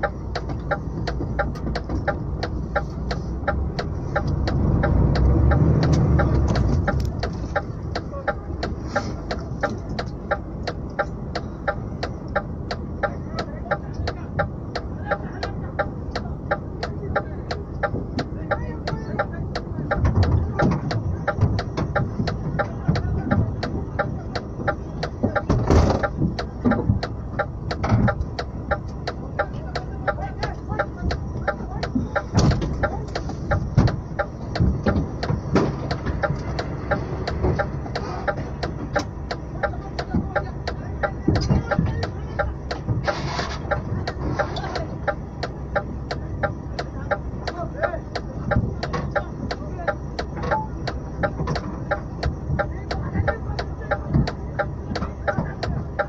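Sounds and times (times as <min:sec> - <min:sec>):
even ticking: 0:00.0 - 0:56.0
lorry engine rumble: 0:00.0 - 0:56.0.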